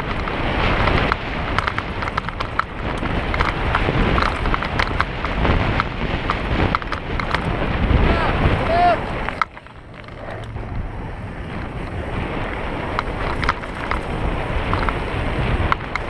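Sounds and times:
chain and frame rattling: 0.0 - 5.3, 9.1 - 10.8
bike tyre roar on dirt: 0.0 - 16.0
wind on microphone: 0.0 - 16.0.

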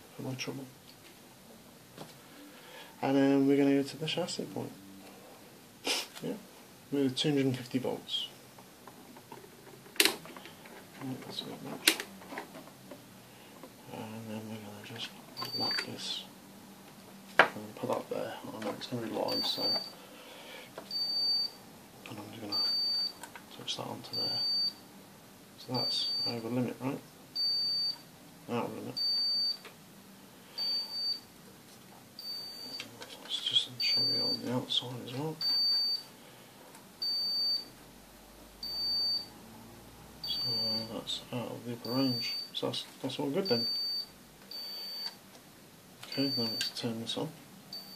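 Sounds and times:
high-pitched tester beeps: 19.3 - 19.9, 22.5 - 23.2, 27.4 - 28.0, 38.6 - 39.3, 40.2 - 40.8, 41.8 - 42.5, 43.4 - 45.2, 46.1 - 46.8.

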